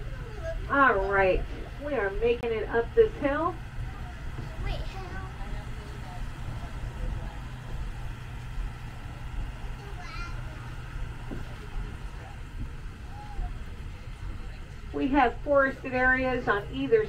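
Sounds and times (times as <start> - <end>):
truck engine rumble: 0.0 - 17.0.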